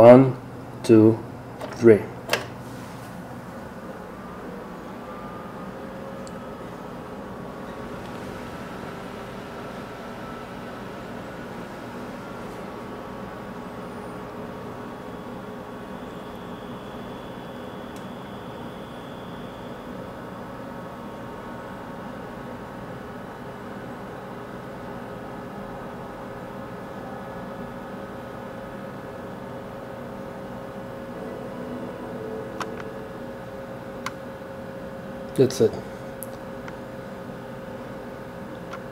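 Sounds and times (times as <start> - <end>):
computer fans whirring: 0.0 - 38.9
faint steady tones: 3.4 - 24.9, 26.3 - 35.6.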